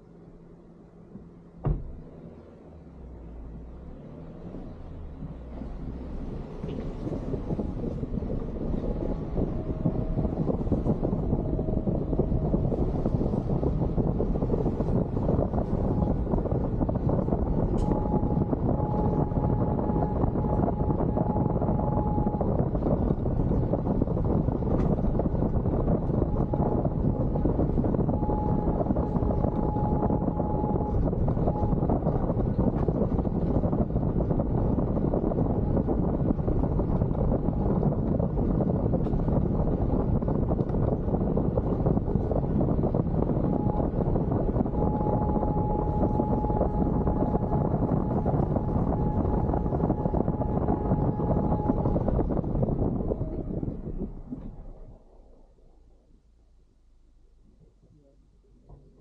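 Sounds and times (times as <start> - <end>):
car engine: 0.0 - 57.5
wind on microphone: 2.9 - 56.3
faint high whine: 5.6 - 59.0.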